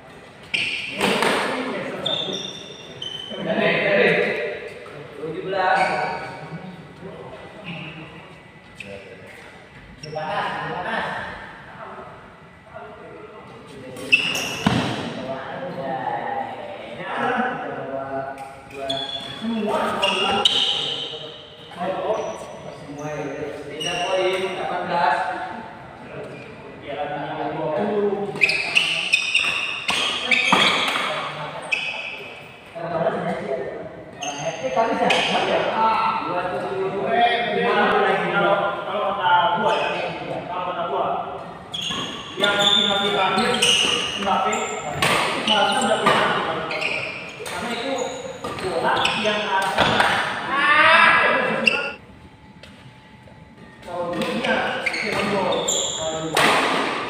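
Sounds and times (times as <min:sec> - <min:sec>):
people talking and calling out: 0:00.0 - 0:57.0.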